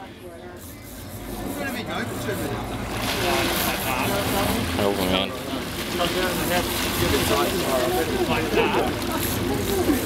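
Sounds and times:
boat engine rumble: 0:00.0 - 0:10.0
people's voices: 0:00.0 - 0:10.0
churning water: 0:00.2 - 0:10.0.

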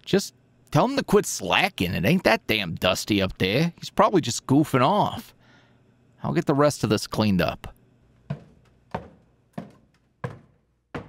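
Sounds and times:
footsteps thudding with echo: 0:08.2 - 0:11.0.

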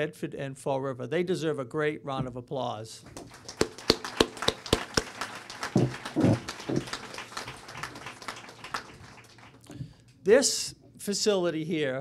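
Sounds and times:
hands clapping by microphone: 0:03.1 - 0:10.0
faint scattered claps: 0:03.1 - 0:10.2.

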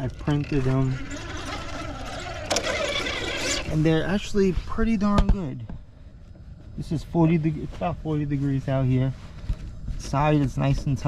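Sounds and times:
toy car electric motor whining: 0:00.2 - 0:03.8.

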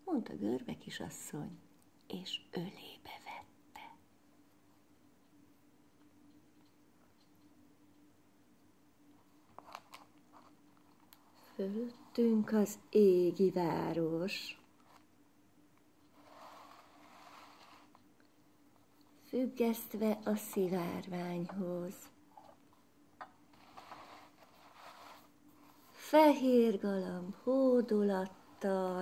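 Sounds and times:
faint steady hum: 0:00.0 - 0:29.0
crayon rustling on paper: 0:16.0 - 0:18.2, 0:23.5 - 0:26.5.

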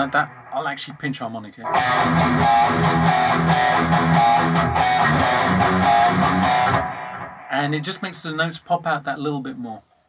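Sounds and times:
distorted electric guitar riff: 0:00.0 - 0:01.1, 0:01.7 - 0:08.2.

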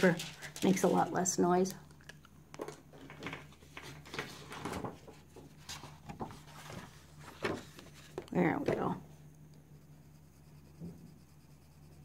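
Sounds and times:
paper rustling and sliding: 0:03.0 - 0:08.8.

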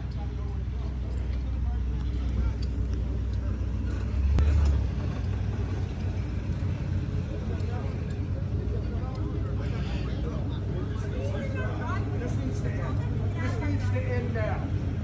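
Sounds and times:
faint indistinct voices: 0:00.0 - 0:15.0
steady low rumble: 0:00.0 - 0:15.0.

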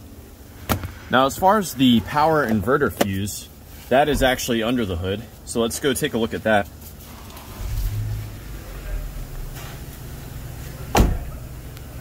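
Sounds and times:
low background rumble: 0:00.0 - 0:12.0
car door slamming shut: 0:10.9 - 0:11.4.

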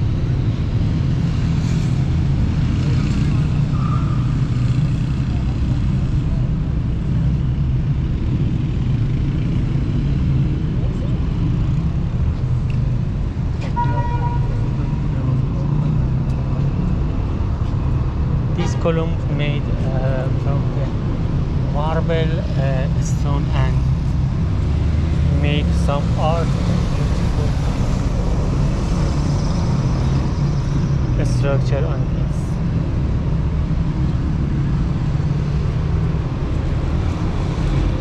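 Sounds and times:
road traffic rumble: 0:00.0 - 0:38.0
car horn: 0:13.6 - 0:14.6.

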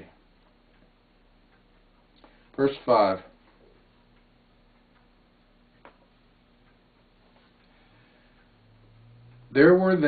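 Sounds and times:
faint low hum: 0:00.0 - 0:10.0
faint ticks: 0:00.0 - 0:10.0.

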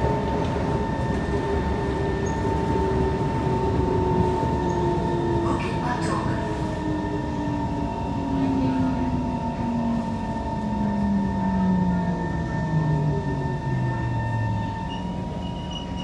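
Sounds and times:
rumble of train car: 0:00.0 - 0:16.0.

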